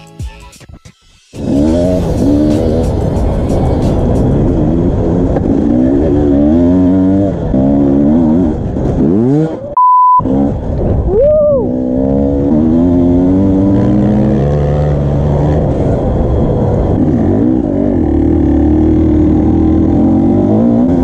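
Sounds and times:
dirt bike engine revving: 1.4s - 3.4s, 4.0s - 10.8s, 11.6s - 21.0s
steady beep: 9.8s - 10.2s.

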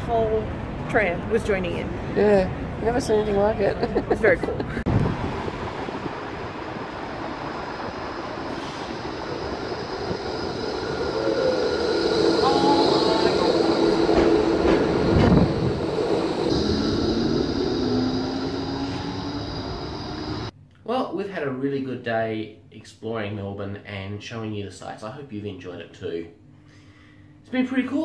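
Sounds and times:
tram rumbling past: 0.0s - 20.5s
tram whining tones: 4.8s - 20.5s.

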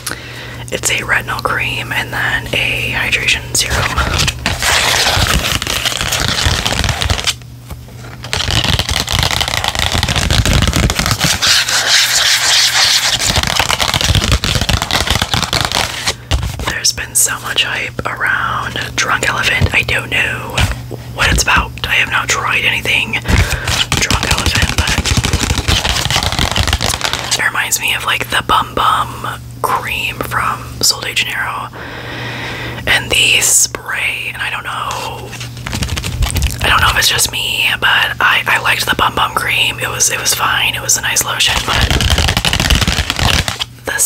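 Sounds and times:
soft whispering: 0.7s - 4.3s, 16.7s - 20.6s, 27.3s - 31.8s, 32.9s - 35.4s, 36.6s - 42.0s.

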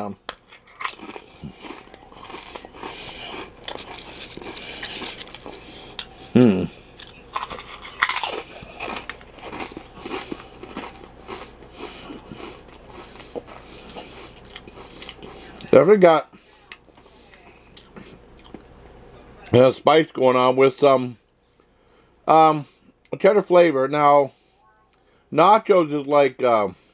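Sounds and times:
chewing crunchy crisps: 0.3s - 15.8s, 16.4s - 19.6s
person humming: 6.2s - 6.9s.

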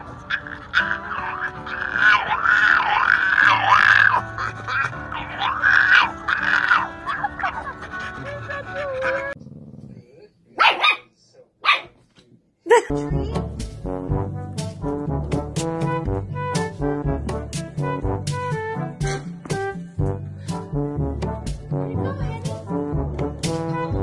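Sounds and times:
background music: 0.0s - 9.4s, 12.8s - 24.0s
dog howling: 0.0s - 9.4s.

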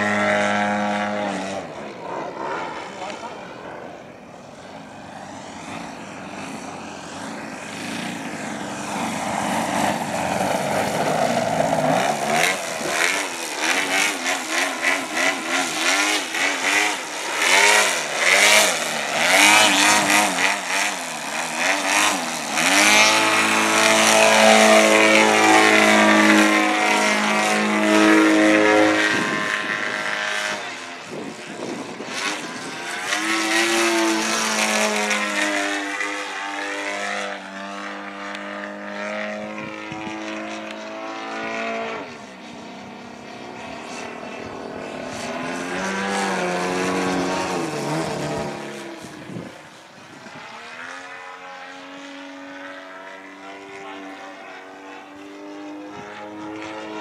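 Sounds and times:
model airplane engine and propeller: 0.0s - 57.0s.

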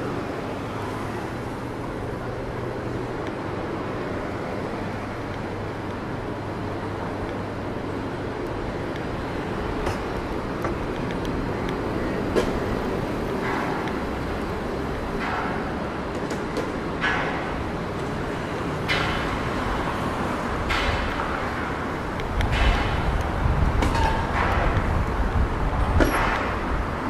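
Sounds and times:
cars passing slowly: 0.0s - 27.0s.

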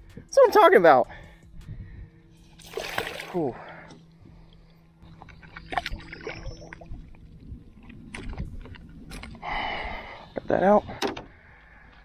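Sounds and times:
fish splashing at water surface: 2.6s - 3.5s.

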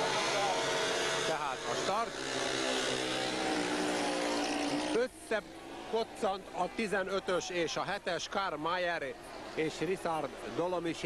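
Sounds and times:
motorcycle engines racing: 0.0s - 6.2s.

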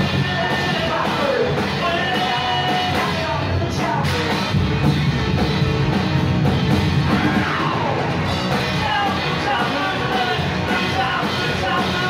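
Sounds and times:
vocals: 0.0s - 4.6s, 7.0s - 12.0s
drum kit: 0.0s - 12.0s
rock band playing live: 0.0s - 12.0s.

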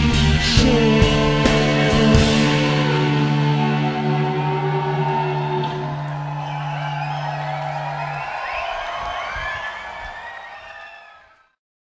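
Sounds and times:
audience cheering and whistling: 2.9s - 11.5s.

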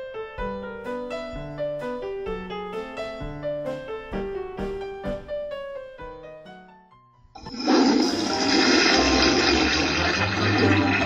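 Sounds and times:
toilet flushing: 7.4s - 11.0s.

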